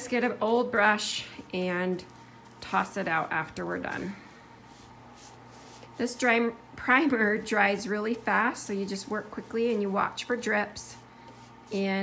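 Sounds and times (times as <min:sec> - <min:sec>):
low steady hum: 0:00.0 - 0:12.0
paintbrush brushing on wood: 0:00.0 - 0:12.0.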